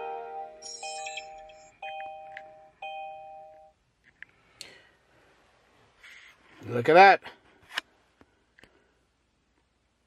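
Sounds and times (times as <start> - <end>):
dashboard chime: 0.0 - 3.7.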